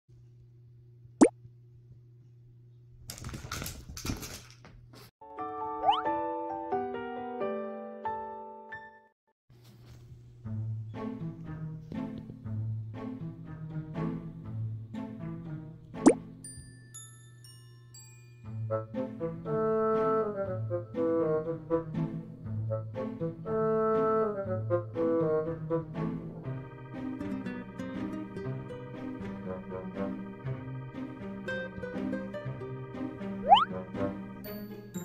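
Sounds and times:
cartoon pop rising in pitch: 0:05.8 - 0:06.0, 0:33.4 - 0:33.8
piano music jingle: 0:26.6 - 0:35.0.

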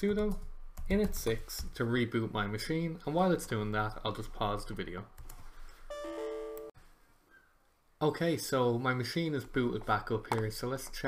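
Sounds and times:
two-note error alert chime: 0:05.9 - 0:06.7.

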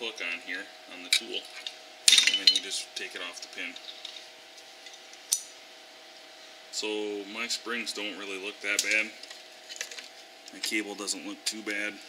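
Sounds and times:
metallic spring snap: 0:05.2 - 0:05.6.

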